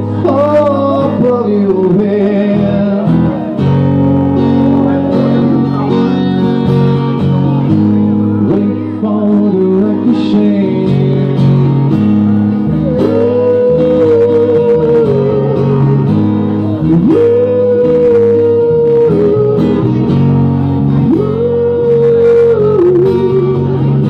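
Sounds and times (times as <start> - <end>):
acoustic guitar strumming: 0.0 - 24.0
bass guitar notes: 0.0 - 24.0.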